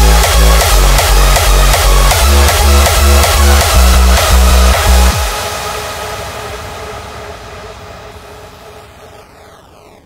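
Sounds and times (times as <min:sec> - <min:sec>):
hardstyle kick drum: 0:00.0 - 0:07.2
noise wash with falling sweep: 0:00.2 - 0:10.0.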